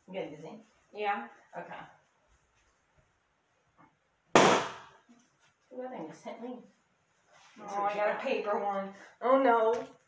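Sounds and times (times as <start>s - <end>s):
balloon popping bang: 4.3s - 5.0s.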